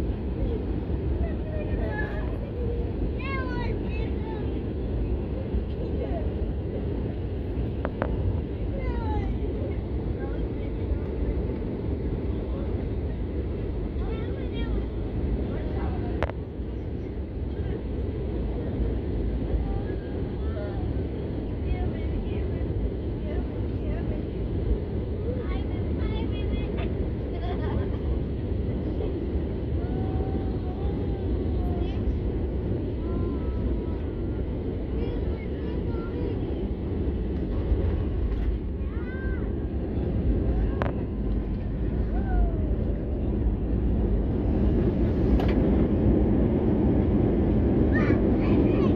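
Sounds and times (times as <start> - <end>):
faint voices: 0.0 - 48.9
jet engine rumble and airflow: 0.0 - 48.9.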